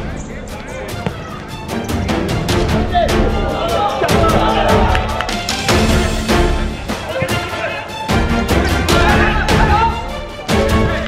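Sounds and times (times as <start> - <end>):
voices: 0.0 - 6.1, 6.7 - 11.0
quiet background music: 0.0 - 11.0.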